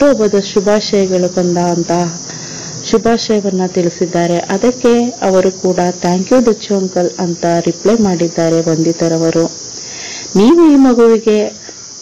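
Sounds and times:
steady high-pitched hiss: 0.0s - 12.0s
person narrating: 10.2s - 11.6s.

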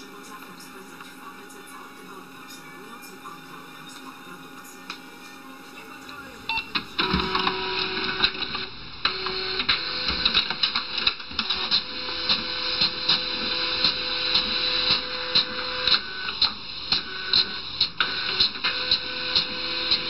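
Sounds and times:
fax machine clicks: 0.0s - 12.9s
fax machine printing whir: 0.0s - 20.0s.

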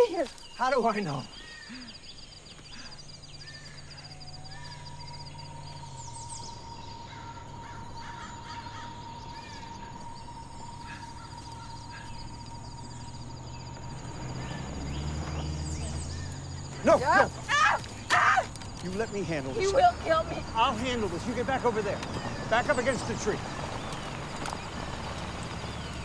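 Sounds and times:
bird chirps: 0.0s - 26.0s
low suspense drone: 2.7s - 16.8s
fast pulsing high line: 3.8s - 17.4s.

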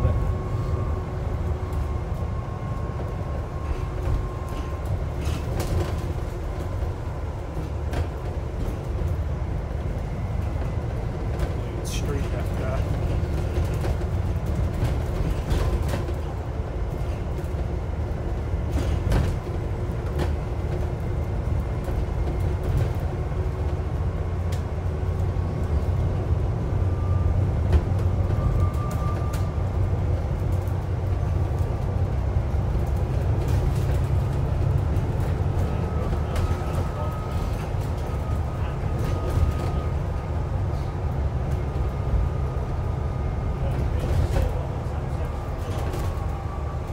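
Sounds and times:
bus engine running: 0.0s - 46.9s.

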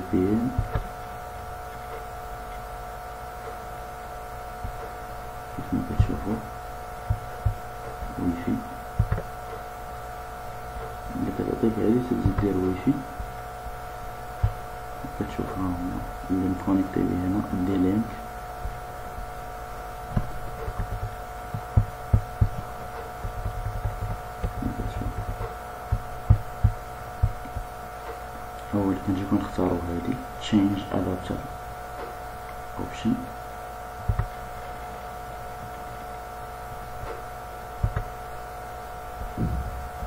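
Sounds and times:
electrical hum: 0.0s - 40.0s
dull low thumps: 0.5s - 0.9s, 7.0s - 8.2s, 8.9s - 9.4s, 14.3s - 14.8s, 20.0s - 27.8s, 34.0s - 34.5s, 39.2s - 40.0s.

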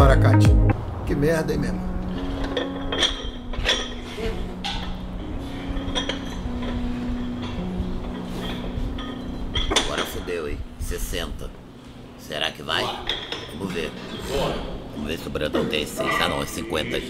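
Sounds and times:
background music with low notes: 0.0s - 17.0s
iron dumbbells clinking: 2.2s - 11.7s, 13.0s - 14.2s.

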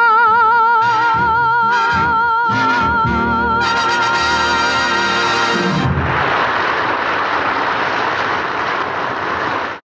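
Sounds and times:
held music chord: 0.0s - 5.9s.

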